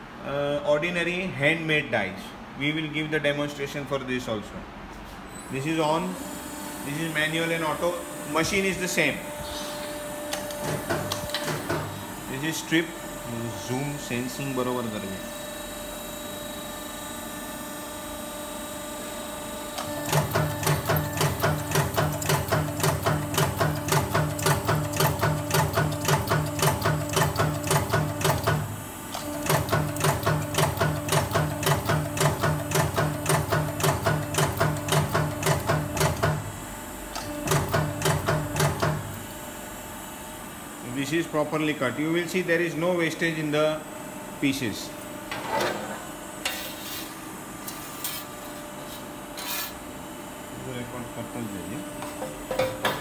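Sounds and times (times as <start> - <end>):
machine humming: 5.4 - 41.2
press punching strokes: 6.2 - 12.4, 19.7 - 36.6, 37.2 - 39.3.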